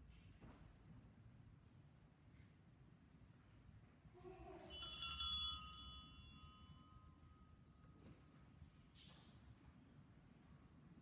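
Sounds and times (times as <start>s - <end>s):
ringing metallic clink: 4.7s - 8.0s.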